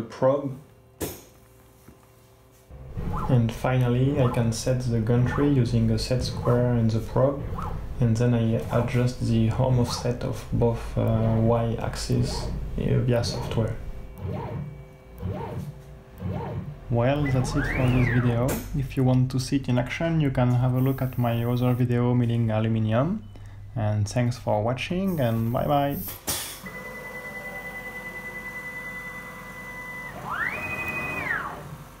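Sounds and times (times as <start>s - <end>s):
faint steady hum: 0.0s - 26.2s
stepper motors whining: 2.7s - 19.0s, 26.6s - 32.0s.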